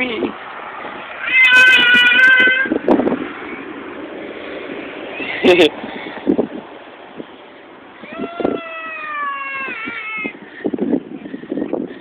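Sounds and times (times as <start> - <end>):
high-pitched wailing cry: 1.2 - 2.8, 8.0 - 10.4.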